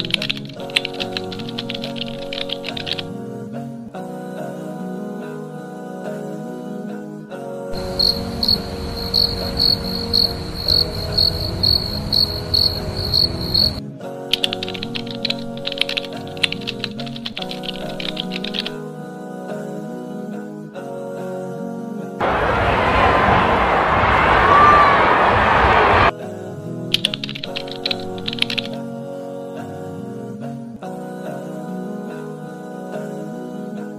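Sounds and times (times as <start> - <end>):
computer keyboard typing: 0.0 - 3.1, 14.4 - 18.8, 27.0 - 28.8
soft background music: 0.0 - 22.2, 26.1 - 33.9
typewriter keystroke clicks: 0.1 - 3.1, 27.0 - 28.8
loud crowd-like noise: 7.8 - 12.0, 22.2 - 26.1
cricket chirping: 7.8 - 13.8.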